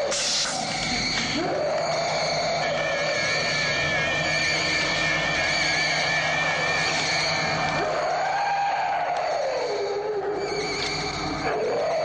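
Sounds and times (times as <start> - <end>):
electronic wailing tones: 0.0 - 8.4.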